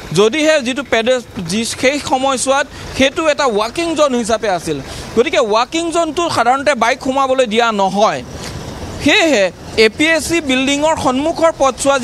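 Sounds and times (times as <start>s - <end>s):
man's voice: 0.0s - 8.3s, 9.0s - 12.0s.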